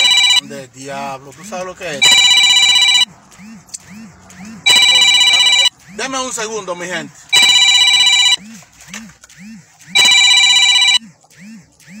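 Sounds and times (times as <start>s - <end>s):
electronic telephone ring: 0.0s - 0.4s, 2.0s - 3.1s, 4.7s - 5.7s, 7.3s - 8.4s, 10.0s - 11.0s.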